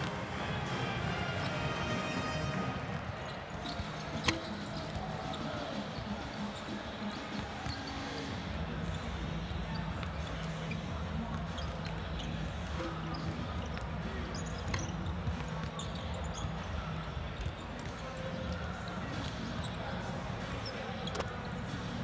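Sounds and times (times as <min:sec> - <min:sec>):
crowd chatter: 0:00.0 - 0:22.0
basketballs bouncing on court: 0:02.8 - 0:22.0.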